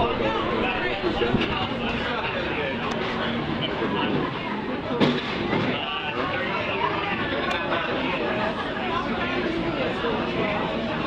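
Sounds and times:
crowd babble of voices: 0.0s - 11.0s.

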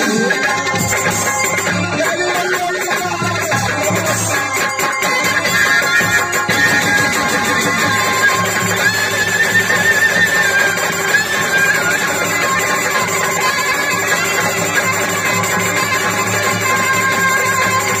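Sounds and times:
folk band accompaniment: 0.0s - 18.0s.

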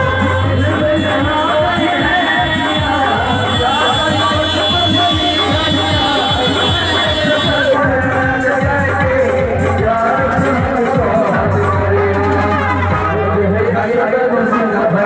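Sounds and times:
band percussion and accompaniment: 0.0s - 13.8s
crowd noise: 0.0s - 15.0s
man singing into a microphone: 0.0s - 15.0s.

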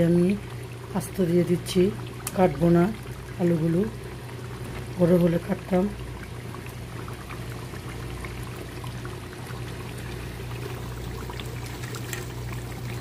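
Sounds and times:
curry bubbling in a pan: 0.0s - 13.0s
steady low hum: 0.0s - 13.0s.

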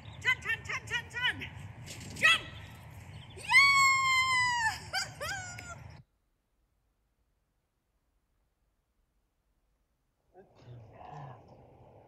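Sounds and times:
low steady rumble: 0.0s - 6.0s.

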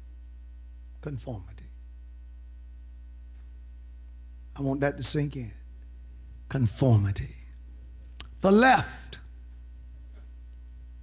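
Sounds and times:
low electrical mains hum: 0.0s - 11.0s
man speaking: 1.0s - 1.7s, 4.6s - 5.6s, 6.5s - 7.5s, 8.2s - 9.2s.

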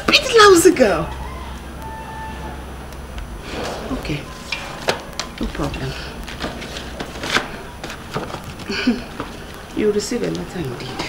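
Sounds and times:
sharp clicks and crackles: 0.0s - 11.0s
paper bag rustling and crinkling: 3.4s - 11.0s.

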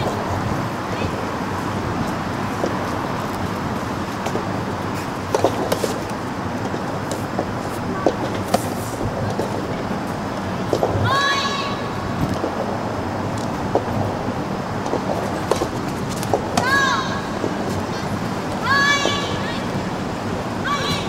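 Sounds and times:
tennis ball struck and bouncing: 5.3s - 6.0s.

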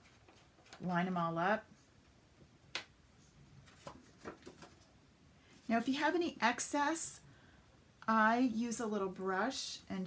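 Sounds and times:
cardstock tapping and rustling: 3.7s - 4.8s.

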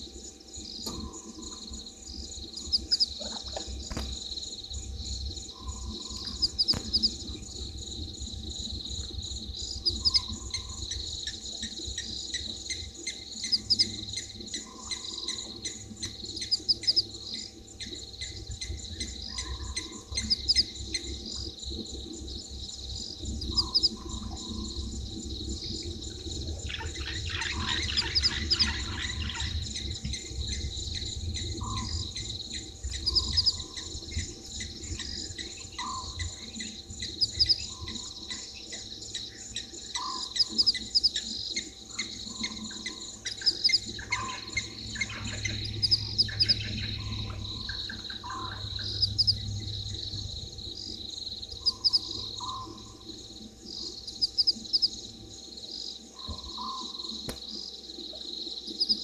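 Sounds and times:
crickets trilling: 0.0s - 59.0s
low rumble: 17.2s - 38.3s, 43.8s - 53.5s.

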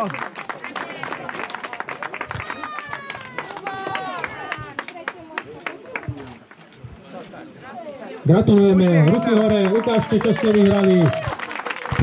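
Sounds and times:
audience clapping: 0.0s - 6.6s, 8.4s - 12.0s
children calling out: 2.4s - 4.1s.

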